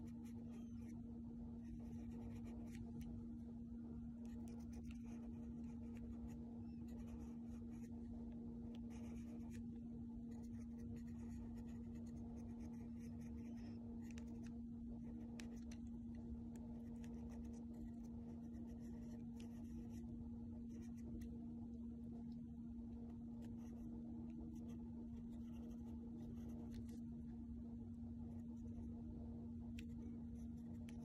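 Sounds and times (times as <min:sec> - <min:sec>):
pencil scratching on paper: 0:00.0 - 0:01.0, 0:01.6 - 0:03.0, 0:04.2 - 0:08.0, 0:08.8 - 0:09.6, 0:10.3 - 0:15.8, 0:16.7 - 0:20.1, 0:20.7 - 0:21.2, 0:23.4 - 0:23.9, 0:24.5 - 0:27.0
steady low hum: 0:00.0 - 0:31.0.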